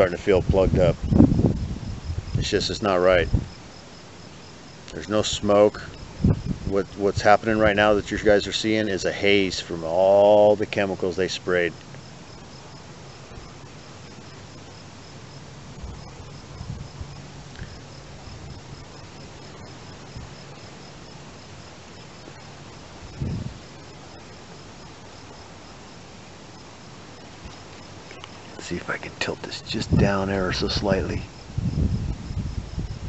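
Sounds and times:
crickets chirping: 0.0s - 33.0s.

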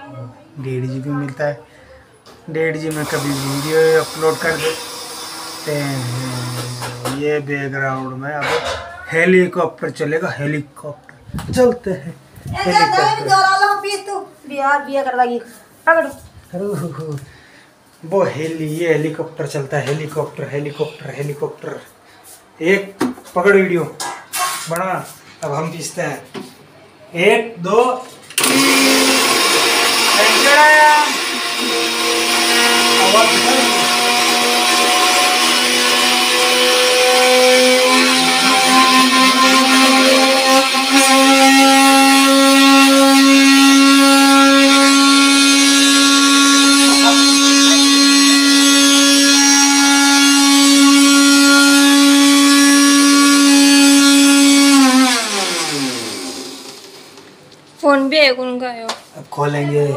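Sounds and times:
mixer grinder whining: 2.6s - 7.4s, 28.4s - 57.4s
motor winding down: 2.9s - 7.1s, 28.4s - 57.2s.

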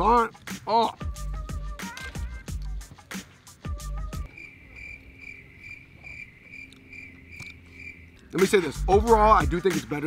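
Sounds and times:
background music: 0.0s - 5.5s, 6.6s - 10.0s
cricket chirping: 4.2s - 8.9s.

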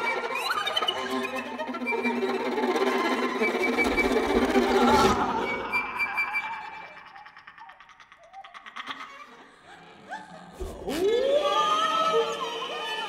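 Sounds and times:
bowed violin and cello: 0.0s - 7.0s.

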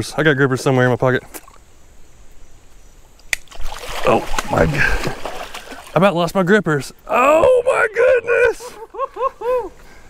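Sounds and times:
creek water splashing: 1.2s - 1.7s, 3.1s - 6.6s.

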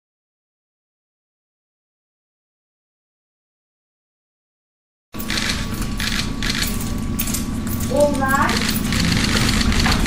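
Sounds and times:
low room hum: 5.2s - 10.0s
rhythmic metal jingling: 5.2s - 10.0s.

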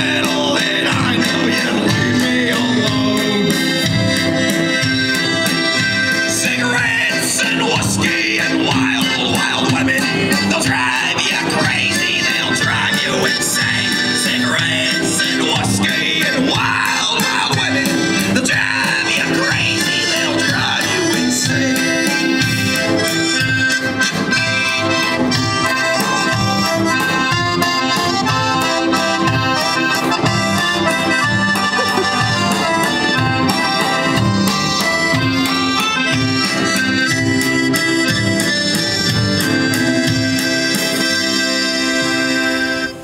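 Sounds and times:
acoustic band with accordion: 0.0s - 43.0s.

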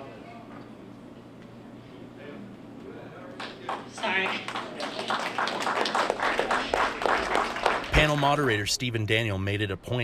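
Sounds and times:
audience applauding: 3.4s - 8.4s.

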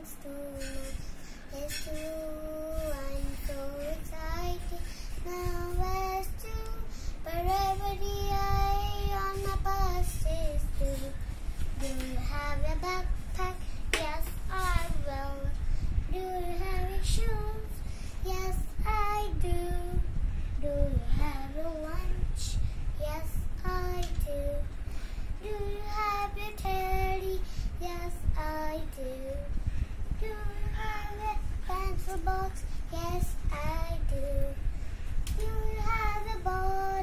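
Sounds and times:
girl singing unaccompanied: 0.0s - 37.0s.

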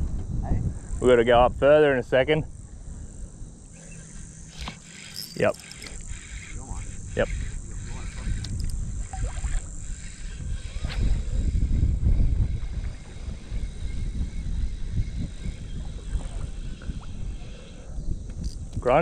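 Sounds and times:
wind buffeting microphone: 0.0s - 3.7s, 5.4s - 19.0s.

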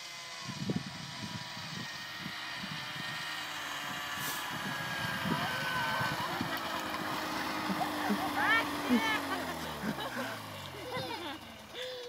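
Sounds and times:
snowmobile engine slowing: 0.0s - 12.0s
voices: 4.4s - 11.9s.

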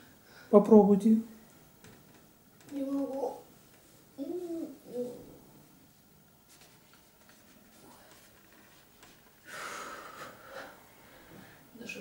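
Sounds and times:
woman breathing deeply: 9.4s - 11.7s.

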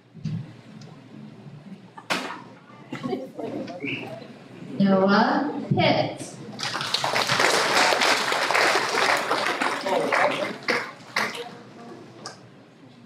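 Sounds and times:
audience applauding: 6.6s - 11.6s.

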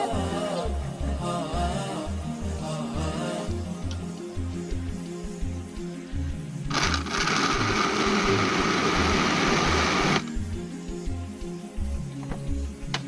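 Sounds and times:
electric blender running: 6.7s - 10.2s.

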